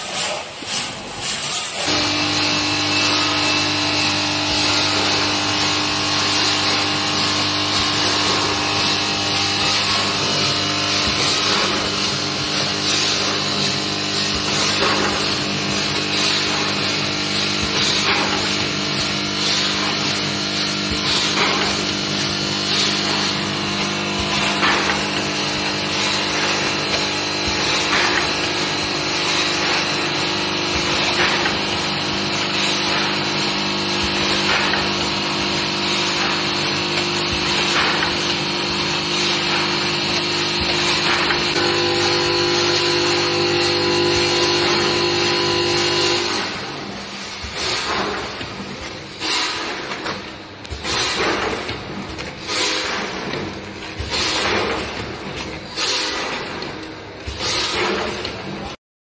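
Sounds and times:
machine stroke: 0.0 - 58.8
packing machine hum and whine: 0.0 - 58.8.

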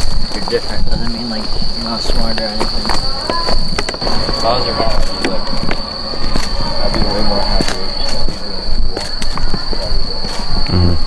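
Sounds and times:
faint voices: 0.0 - 11.0
high-pitched whine: 0.1 - 11.0
footsteps walking: 2.1 - 10.4
low rumble: 3.6 - 9.7.

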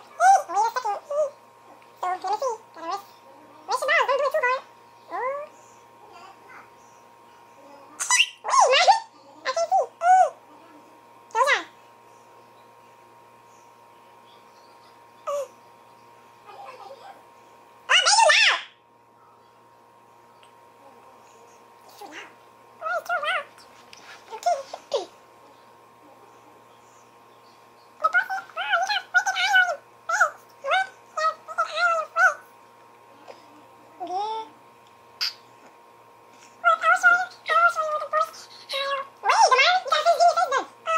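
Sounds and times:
high-pitched wordless cries: 0.0 - 5.6, 7.6 - 10.5, 14.8 - 15.6, 17.9 - 18.8, 21.9 - 23.7, 28.0 - 32.5, 36.5 - 40.9.

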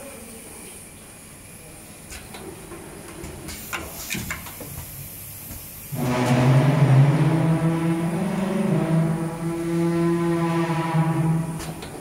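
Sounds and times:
filling machine humming: 4.9 - 12.0.

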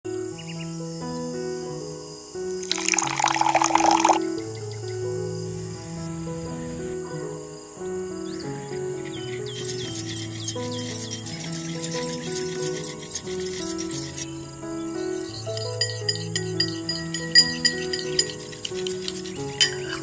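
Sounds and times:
slow background music: 0.1 - 20.0
milk splashing into steel bowl: 2.6 - 4.2.

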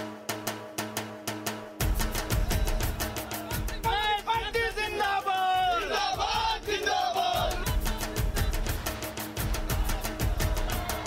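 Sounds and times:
music drumbeat: 0.0 - 11.0
men shouting and cheering: 2.2 - 11.0.

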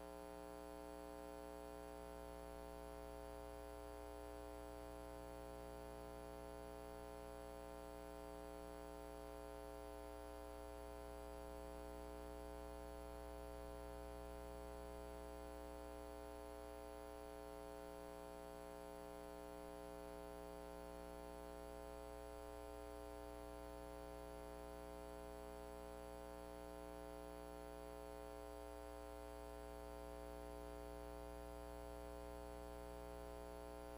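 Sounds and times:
electrical mains hum: 0.0 - 33.9.

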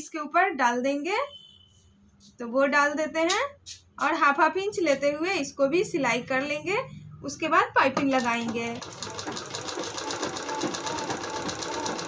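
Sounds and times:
sewing machine stitching: 8.2 - 12.0.

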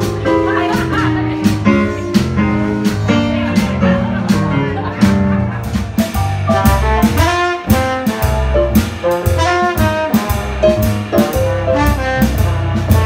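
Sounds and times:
bass and drum kit: 0.0 - 13.0
stage piano: 0.0 - 13.0
saxophone and horns: 4.6 - 13.0.

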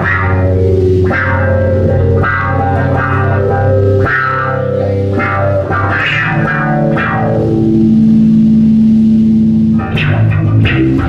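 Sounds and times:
distorted electric guitar: 0.0 - 11.0
electric bass: 0.0 - 11.0.

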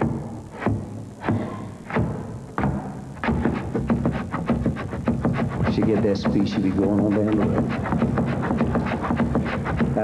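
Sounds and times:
dance shoes shuffling on stage: 1.9 - 10.0.

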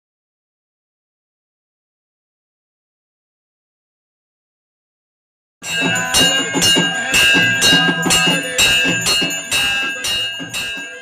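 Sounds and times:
temple bell ringing: 5.6 - 11.0.

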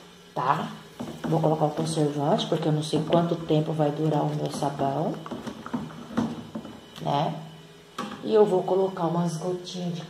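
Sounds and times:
stick stirring thick liquid: 0.8 - 6.8.

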